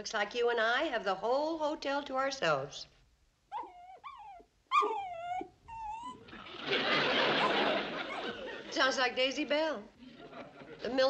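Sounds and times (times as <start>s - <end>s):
dog giving high calls: 3.5s - 6.2s
audience laughter: 6.3s - 11.0s.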